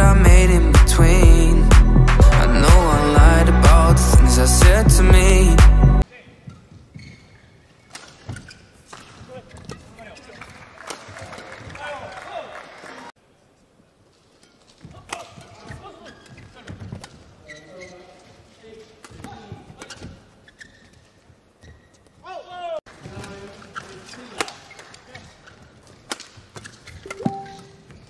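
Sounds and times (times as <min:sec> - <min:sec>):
shoes squeaking on floor: 0:06.2 - 0:10.5, 0:14.1 - 0:28.0
racket hitting shuttlecock: 0:07.9 - 0:09.8, 0:25.8 - 0:28.0.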